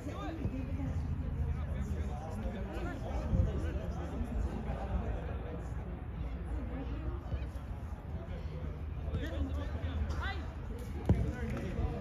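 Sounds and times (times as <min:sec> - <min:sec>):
soccer ball kicked: 0:10.8 - 0:12.0.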